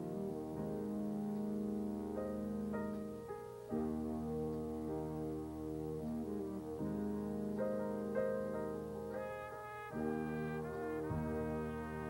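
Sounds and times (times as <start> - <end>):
featured trumpet: 0.0 - 3.0, 9.1 - 12.0
jazz big band playing: 9.2 - 12.0
bass: 9.9 - 12.0.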